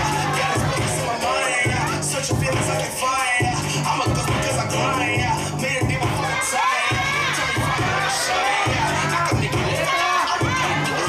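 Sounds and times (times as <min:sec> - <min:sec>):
audience cheering and shouting: 0:00.0 - 0:11.0
hip hop dance music: 0:00.0 - 0:11.0.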